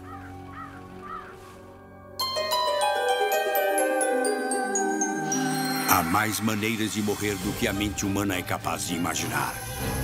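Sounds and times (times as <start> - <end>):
bird calling: 0.0 - 1.7.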